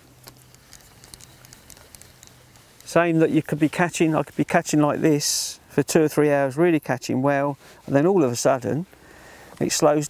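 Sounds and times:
low steady hum: 0.0 - 10.0
fishing reel clicks and ticks: 0.2 - 3.2.

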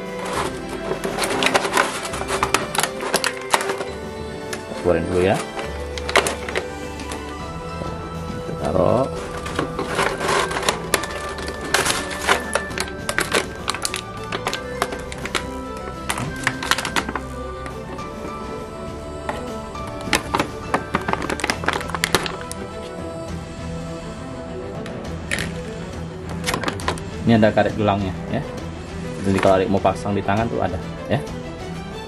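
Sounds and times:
plastic blister tray crackling: 0.0 - 7.4, 8.5 - 18.4, 19.3 - 22.7
background music: 0.0 - 32.0.

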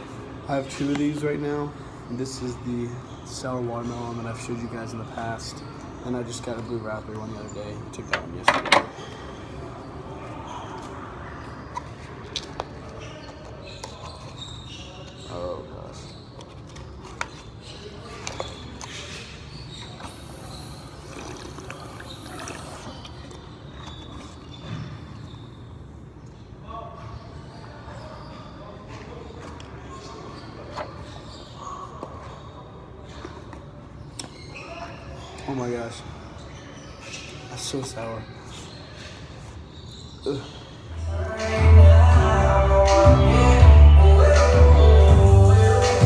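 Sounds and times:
faint indistinct voices: 0.0 - 46.0.

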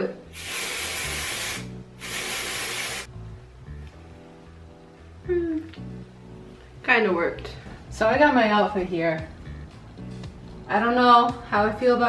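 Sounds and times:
aerosol can spraying: 0.3 - 3.1.

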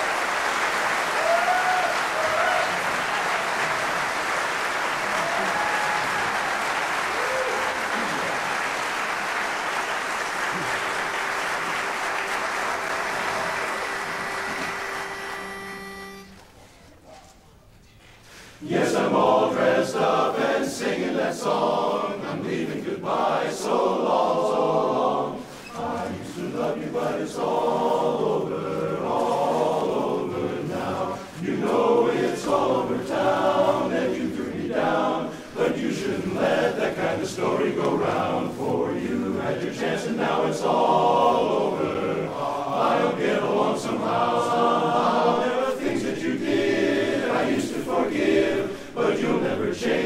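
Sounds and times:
men's chorus singing a cappella: 18.6 - 50.0.

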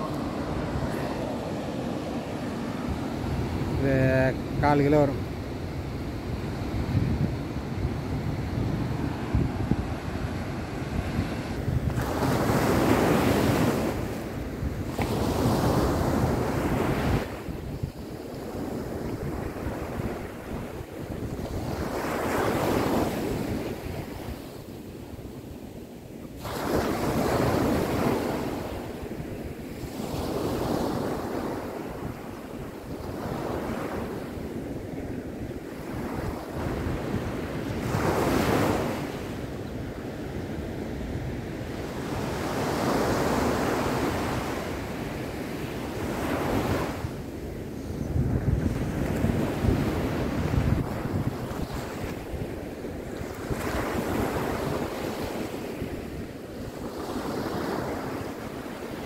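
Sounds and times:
surf breaking on beach: 0.0 - 17.7
wind buffeting microphone: 0.0 - 24.5, 44.0 - 58.4.

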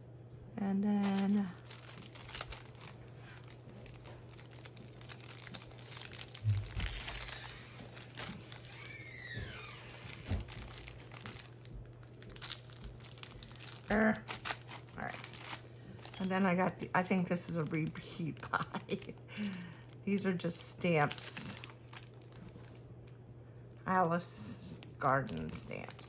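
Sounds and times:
steady low hum: 0.0 - 26.0
plastic bags crinkling: 0.9 - 23.1, 24.7 - 26.0.

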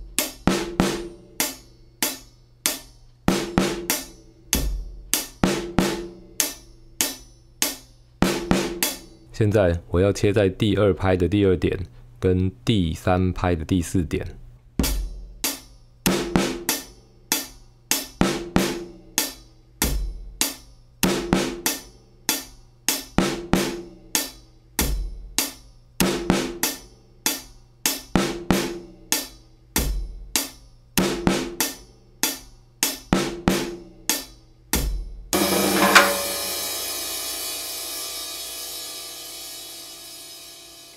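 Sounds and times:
drum kit playing a steady beat: 0.0 - 9.3, 14.7 - 40.9
cymbal crash ringing: 35.4 - 40.9.

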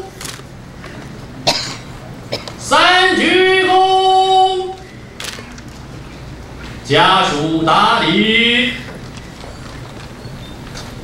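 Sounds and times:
short cough: 1.4 - 2.6
person chanting a command: 2.6 - 4.8, 6.9 - 8.9.

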